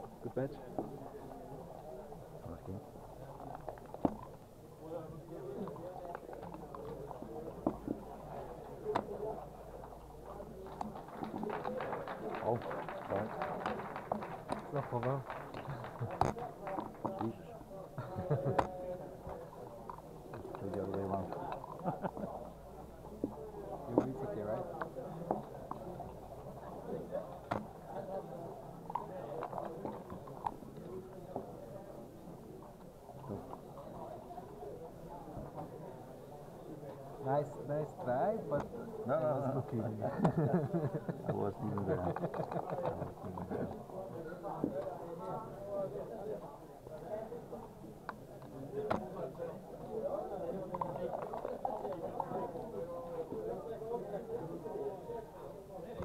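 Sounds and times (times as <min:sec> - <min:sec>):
murmur of background voices: 0:00.0 - 0:56.0.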